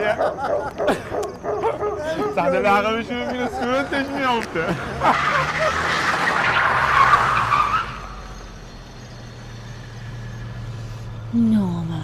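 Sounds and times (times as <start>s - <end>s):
car tyres skidding with a squeal: 4.0s - 10.6s.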